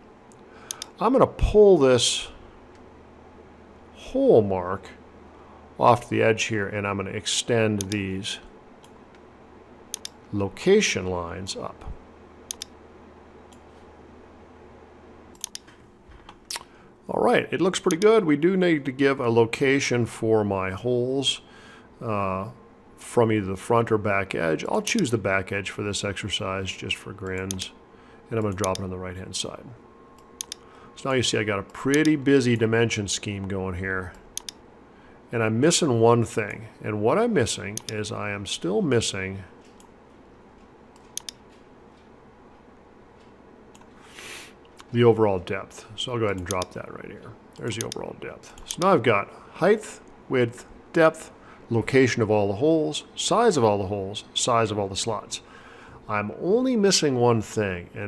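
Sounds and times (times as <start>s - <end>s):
faint steady room noise: 0.0s - 58.0s
low steady hum: 0.0s - 58.0s
computer mouse clicks: 0.3s - 1.0s, 7.8s - 8.0s, 9.9s - 10.2s, 12.5s - 12.8s, 15.3s - 16.7s, 27.3s - 27.7s, 28.4s - 28.9s, 30.2s - 30.7s, 34.1s - 34.6s, 37.8s - 38.0s, 40.9s - 41.7s, 43.2s - 43.9s, 46.3s - 46.8s, 47.5s - 48.9s
computer mouse double click: 30.4s - 30.6s.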